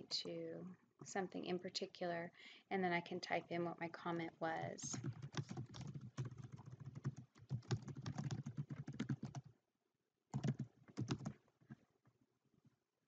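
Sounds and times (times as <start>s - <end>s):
computer keyboard typing: 5.0s - 9.5s, 10.3s - 11.4s.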